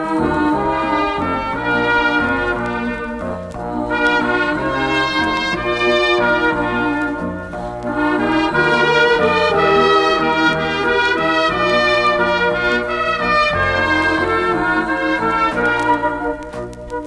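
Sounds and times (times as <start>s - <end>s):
orchestra playing slow serenade: 0.0s - 17.0s.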